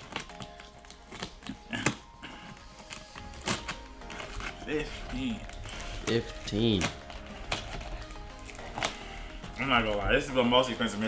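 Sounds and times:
hands handling plastic-wrapped box: 0.0s - 11.0s
soft background music: 0.0s - 11.0s.

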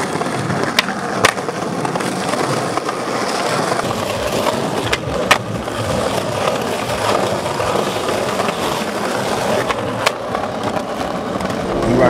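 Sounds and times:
skateboard clacks: 0.0s - 12.0s
skateboard wheels rolling on stone: 0.0s - 12.0s.

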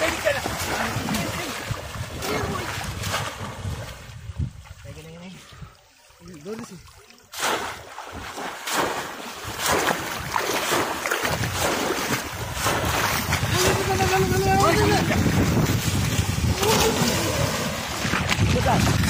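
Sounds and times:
floodwater splashing and churning: 0.0s - 19.0s.

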